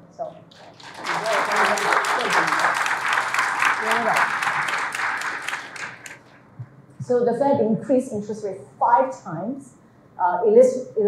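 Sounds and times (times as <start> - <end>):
audience applauding: 0.5 - 6.3.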